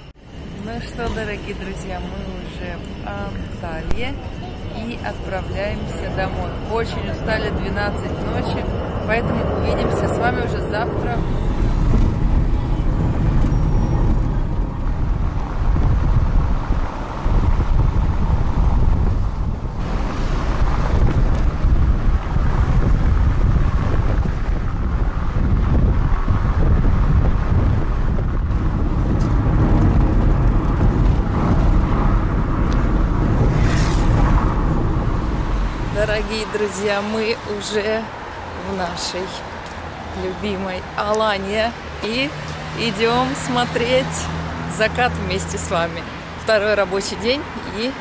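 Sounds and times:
car engine and tyre rumble: 0.0 - 48.0
wind: 0.0 - 48.0.

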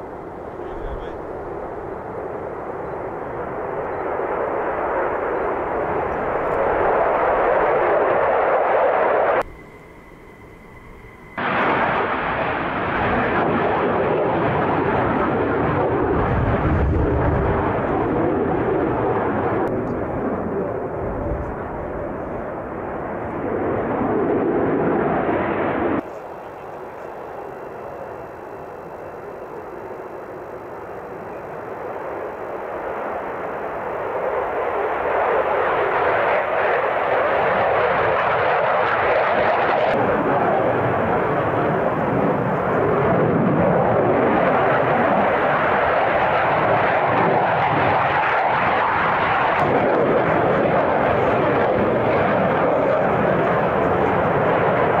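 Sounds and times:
jet engines roaring: 0.0 - 55.0.

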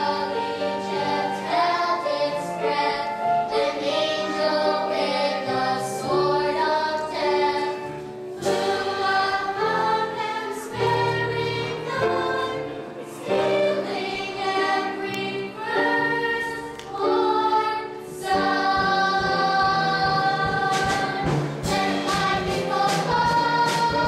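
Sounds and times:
choir singing: 0.0 - 24.0.

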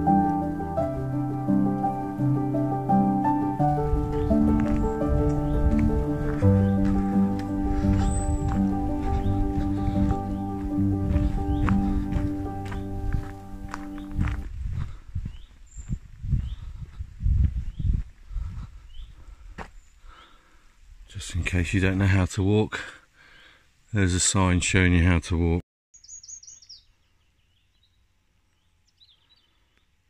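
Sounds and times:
keyboard chords: 0.0 - 14.5
footsteps on woodland path: 3.6 - 20.6
faint bird chirps: 26.0 - 30.0.

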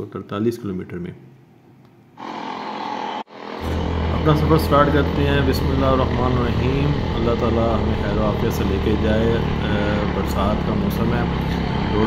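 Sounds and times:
motorcycle engine running: 2.7 - 12.0.

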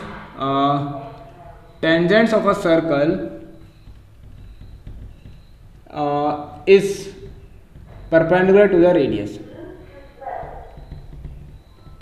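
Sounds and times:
marker pen scratching on whiteboard: 1.2 - 12.0.

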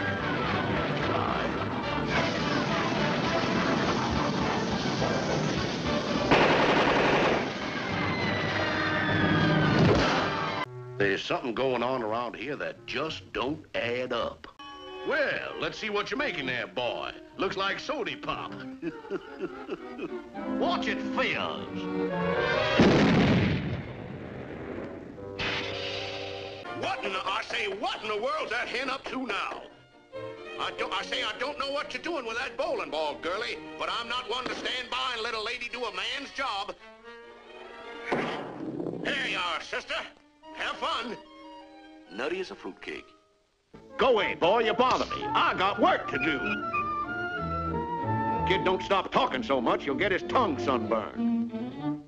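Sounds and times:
orchestral music: 0.0 - 6.6, 14.6 - 23.2, 25.1 - 28.8, 43.8 - 52.0
noisy burst: 2.0 - 8.8
cartoon explosion blast: 2.1 - 10.6, 22.5 - 26.6, 38.1 - 39.2
cartoon machine-gun fire: 6.3 - 7.8
falling whistle tones: 7.6 - 10.6.

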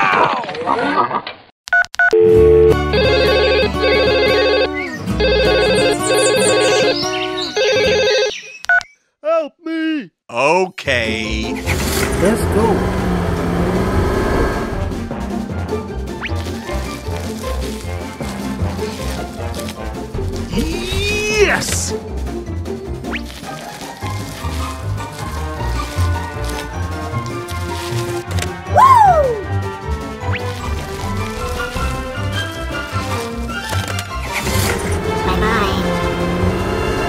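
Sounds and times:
phone ringtone: 2.1 - 8.8.

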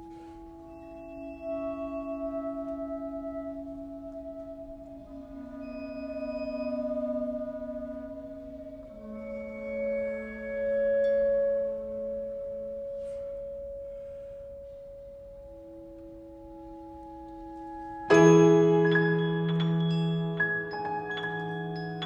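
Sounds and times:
flute: 0.0 - 19.2
vibraphone: 15.9 - 22.0.

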